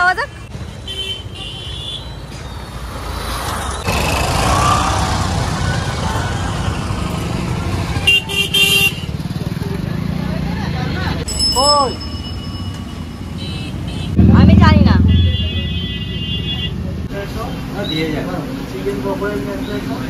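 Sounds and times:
road traffic rumble: 0.0 - 20.0
vehicle horn honking: 8.0 - 9.2, 13.4 - 16.9.

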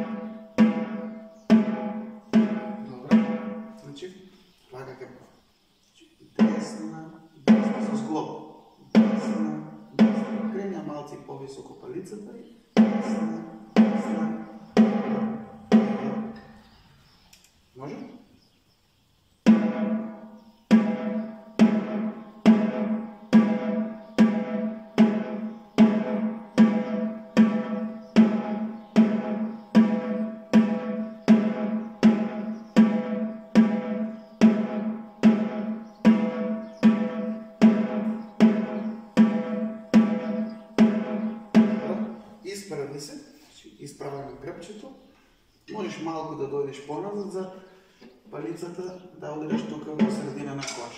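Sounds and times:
snare drum strokes: 12.8 - 16.3, 49.5 - 50.9.

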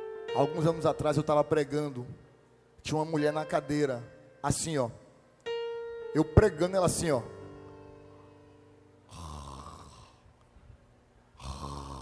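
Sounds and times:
man imitating snoring: 9.1 - 10.2, 11.4 - 12.0.

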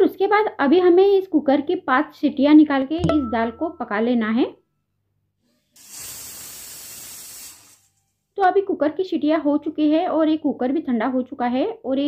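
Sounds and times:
pressure cooker steam hiss: 5.7 - 8.2.

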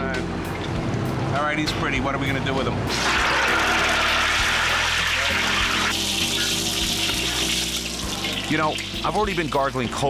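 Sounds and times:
low music: 0.0 - 10.0
hot oil sizzling in a wok: 2.9 - 10.0.

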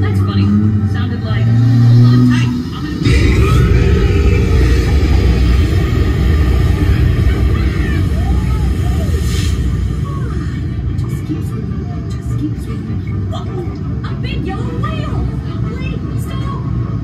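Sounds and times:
low rumble with hiss: 0.0 - 17.0.

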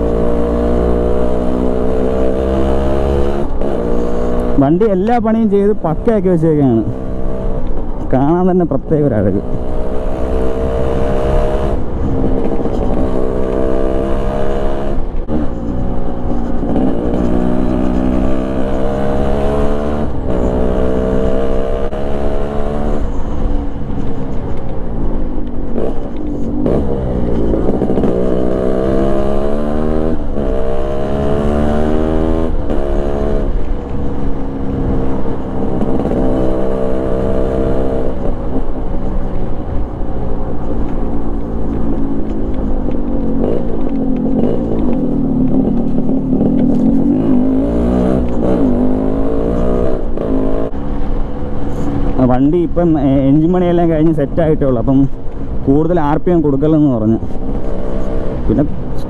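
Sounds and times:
two-stroke motorcycle engine revving: 0.0 - 5.0, 9.3 - 15.7, 16.3 - 23.2, 25.8 - 33.6, 34.4 - 38.6, 41.5 - 50.7.

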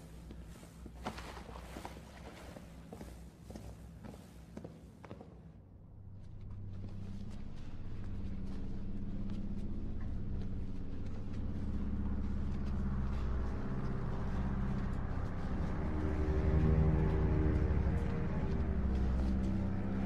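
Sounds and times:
droning suspense film score: 0.0 - 20.0.

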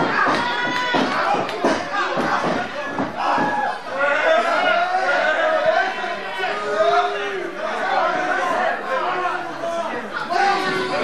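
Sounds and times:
crowd chattering in a hall: 0.0 - 11.0.

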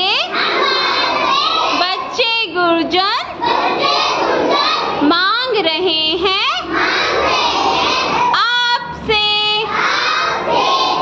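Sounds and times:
children calling out in chorus: 0.0 - 2.2, 3.3 - 5.1, 6.6 - 11.0.

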